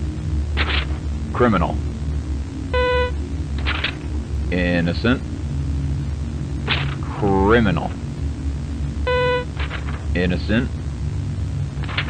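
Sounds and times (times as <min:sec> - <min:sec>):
steady low hum: 0:00.0 - 0:12.0
buzzy electronic beep: 0:02.7 - 0:03.2, 0:09.0 - 0:09.6.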